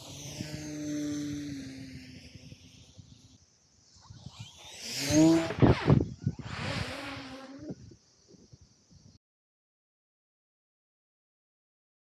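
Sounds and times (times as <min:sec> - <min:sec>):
model plane motor whine passing: 0:00.0 - 0:07.8.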